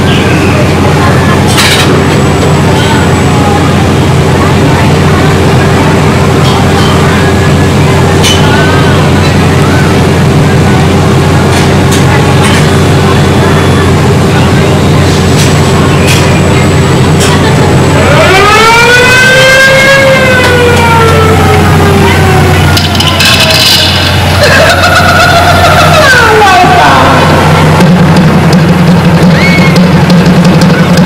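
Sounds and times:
low machinery hum: 0:00.0 - 0:31.0
roller coaster motor whine: 0:00.0 - 0:31.0.

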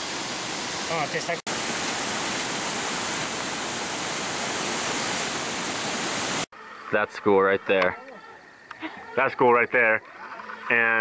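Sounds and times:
stream rushing over rocks: 0:00.0 - 0:06.5.

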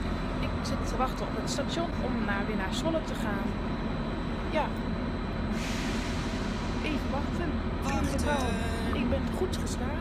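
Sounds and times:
train engine low rumble: 0:00.0 - 0:10.0.

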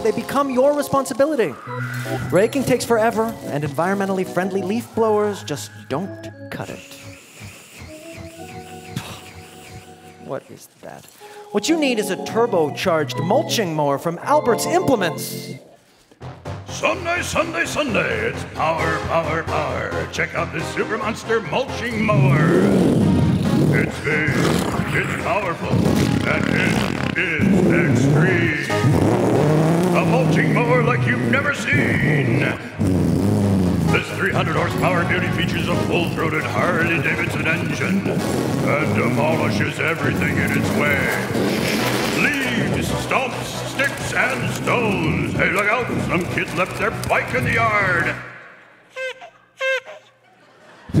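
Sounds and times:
man imitating lawn mower engine: 0:06.9 - 0:10.3, 0:22.1 - 0:43.8.

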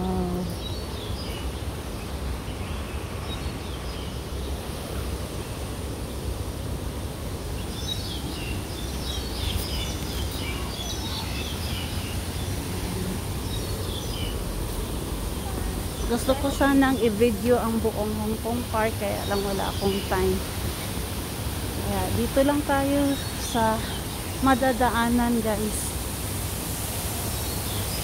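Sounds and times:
birds chirping: 0:00.0 - 0:26.2
steady low rumble: 0:05.4 - 0:22.8.

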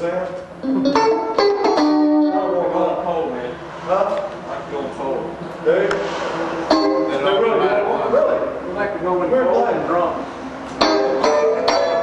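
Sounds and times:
electric guitar playing: 0:00.4 - 0:03.1, 0:06.4 - 0:08.5, 0:10.7 - 0:12.0.

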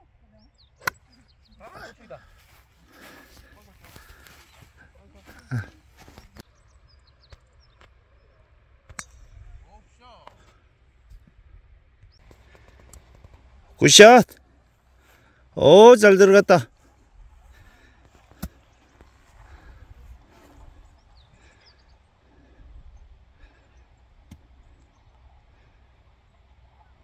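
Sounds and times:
person shouting: 0:13.8 - 0:14.2, 0:15.6 - 0:16.6.

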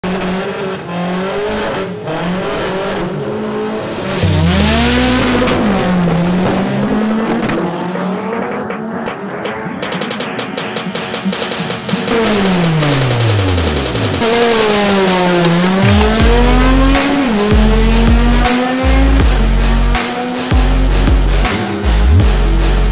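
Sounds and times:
car engine revving: 0:00.0 - 0:22.9.

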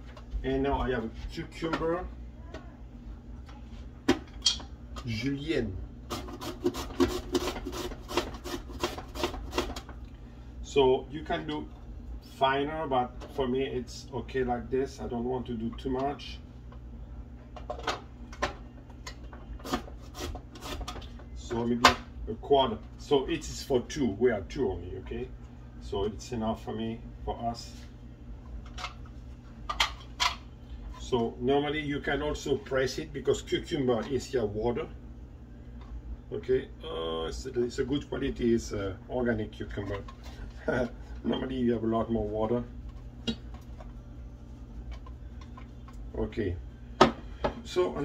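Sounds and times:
low steady hum: 0:00.0 - 0:48.0
cucumber cut on julienne slicer: 0:06.1 - 0:09.8, 0:19.6 - 0:20.9.

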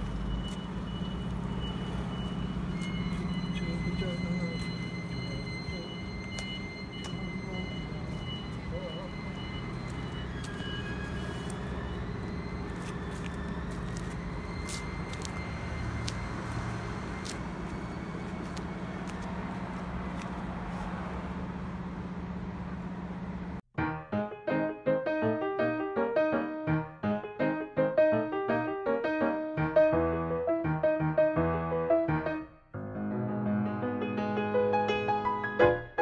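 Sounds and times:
piano music: 0:23.7 - 0:36.0.

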